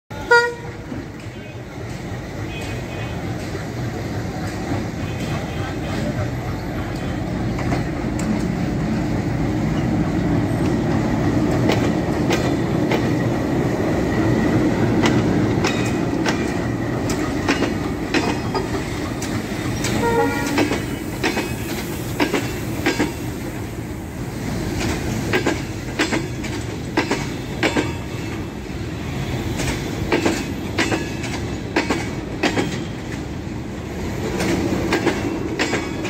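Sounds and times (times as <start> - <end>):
train horn toot: 0.1 - 0.8, 19.9 - 20.9
diesel locomotive rumble: 0.1 - 36.0.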